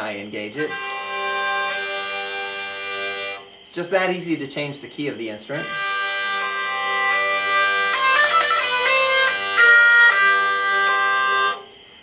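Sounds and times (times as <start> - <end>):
hurdy-gurdy drone: 0.0 - 3.5, 5.5 - 11.7
hurdy-gurdy melody: 0.0 - 3.8, 5.0 - 11.7.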